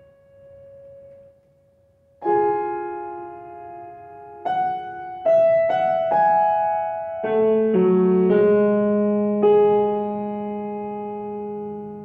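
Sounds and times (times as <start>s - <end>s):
piano note: 0.0s - 12.0s.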